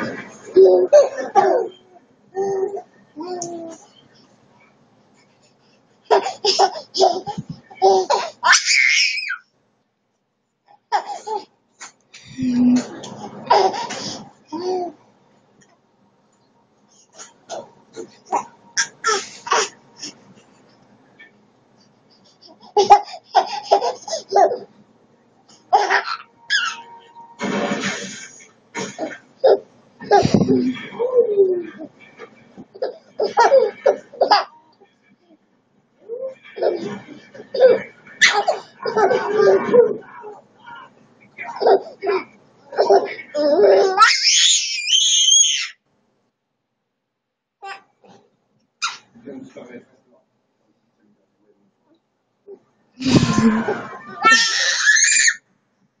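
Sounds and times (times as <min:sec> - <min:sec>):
baby laughing: 0:00.0 - 0:03.8, 0:06.1 - 0:08.7, 0:12.8 - 0:15.0, 0:22.4 - 0:24.7, 0:25.7 - 0:27.0, 0:28.8 - 0:31.9, 0:32.7 - 0:34.6, 0:36.0 - 0:40.4, 0:41.4 - 0:44.5, 0:53.0 - 0:55.4
baby squealing: 0:25.9 - 0:26.9, 0:43.4 - 0:45.8, 0:54.1 - 0:55.4.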